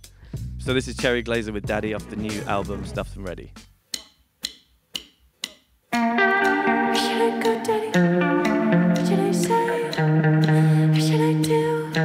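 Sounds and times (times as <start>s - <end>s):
sharp count-in clicks: 3.9s - 12.0s.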